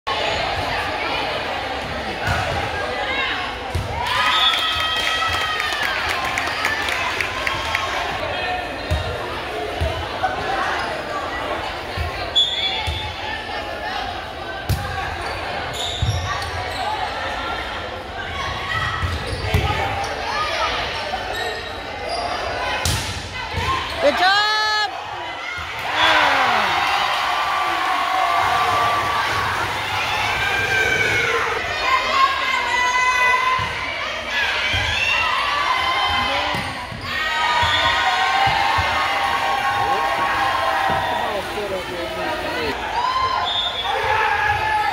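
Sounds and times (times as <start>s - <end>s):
murmur of voices: 0.1s - 4.2s, 5.1s - 44.9s.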